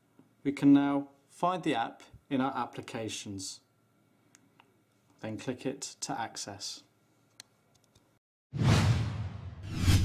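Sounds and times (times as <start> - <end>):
whoosh: 8.5 - 10.0.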